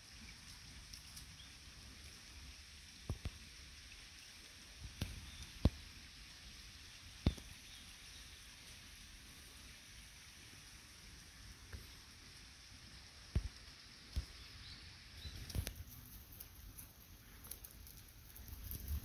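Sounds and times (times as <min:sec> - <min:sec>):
faint high hiss: 0:00.0 - 0:19.0.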